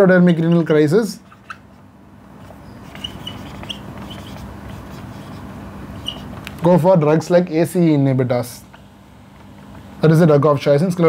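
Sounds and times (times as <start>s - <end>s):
whiteboard marker squeaking: 0.2s - 1.8s, 2.4s - 6.5s.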